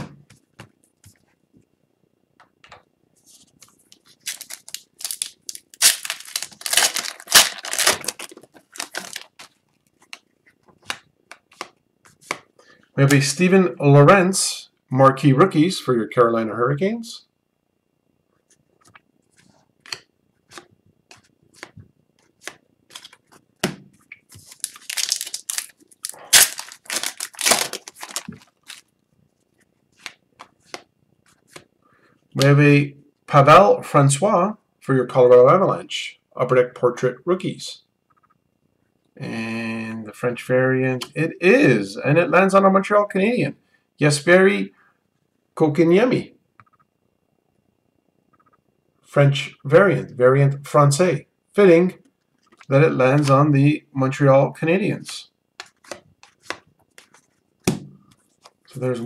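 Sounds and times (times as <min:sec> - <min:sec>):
plastic wrapper crinkling and tearing: 0:03.9 - 0:10.2, 0:24.4 - 0:28.9.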